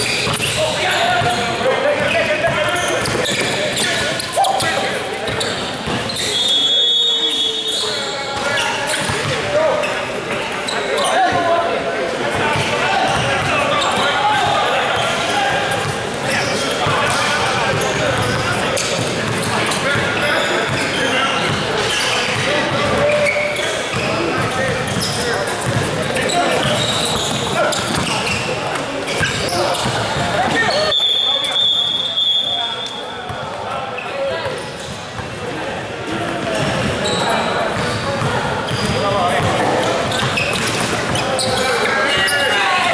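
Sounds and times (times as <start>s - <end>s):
indistinct shouting and talking: 0.0s - 42.9s.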